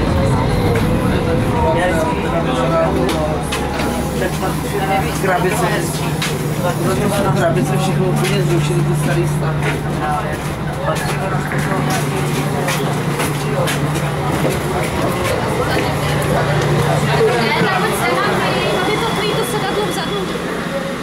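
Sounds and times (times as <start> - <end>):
diesel railcar engine droning: 0.0 - 21.0
passenger voices: 0.0 - 21.0.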